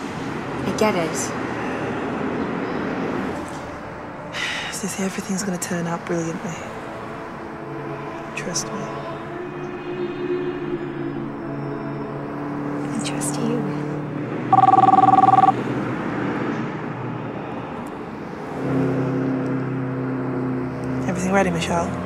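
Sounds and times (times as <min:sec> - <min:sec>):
phone two-tone signal: 0:14.5 - 0:15.6.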